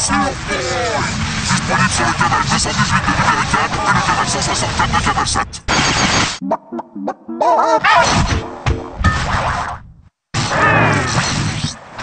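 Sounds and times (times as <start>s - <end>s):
noisy burst: 0.0s - 6.4s.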